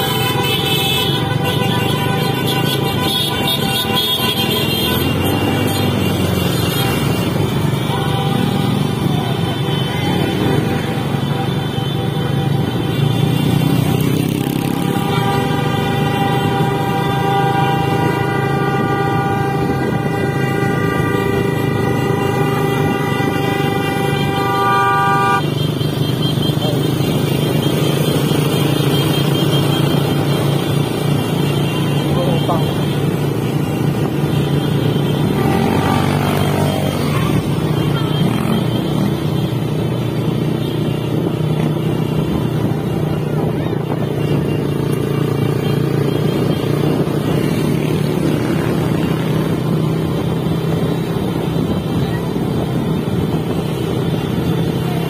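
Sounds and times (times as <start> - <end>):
vehicle horn blast: 0.0 - 28.2, 31.3 - 39.4.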